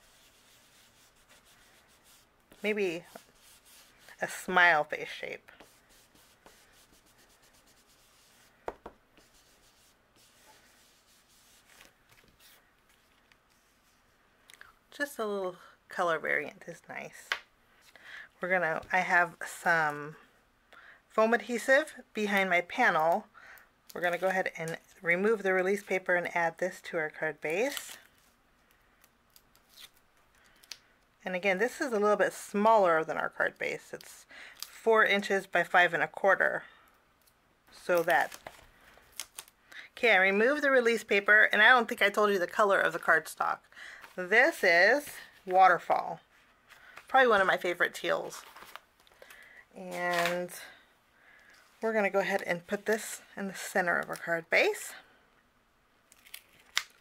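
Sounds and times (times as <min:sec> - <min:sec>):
brush rubbing on cardstock: 0:00.0 - 0:04.5, 0:05.6 - 0:08.6, 0:09.2 - 0:12.6
scratchy paper rustle: 0:00.0 - 0:04.5, 0:05.1 - 0:08.6, 0:09.2 - 0:14.1
paper handling: 0:05.5 - 0:14.0, 0:38.0 - 0:39.5, 0:48.3 - 0:49.4, 0:50.1 - 0:50.4.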